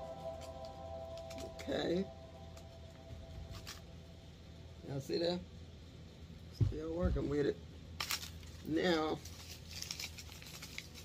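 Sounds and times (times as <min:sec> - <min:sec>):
low steady hum: 0:00.0 - 0:11.0
woven basket rustling: 0:08.0 - 0:11.0.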